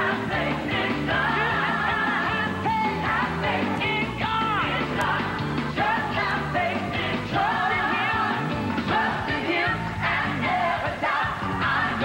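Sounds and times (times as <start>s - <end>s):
band playing gospel music: 0.0s - 12.0s
choir singing: 0.0s - 12.0s
woman singing lead: 0.0s - 12.0s.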